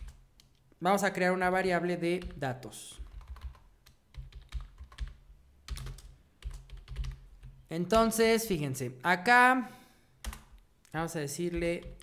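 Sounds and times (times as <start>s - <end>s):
keyboard typing: 0.0s - 0.6s, 2.2s - 8.2s, 10.2s - 12.0s.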